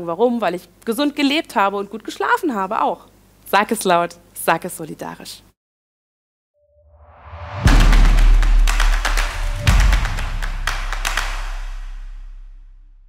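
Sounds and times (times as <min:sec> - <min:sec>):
outro music with percussive hits: 0:07.2 - 0:13.0.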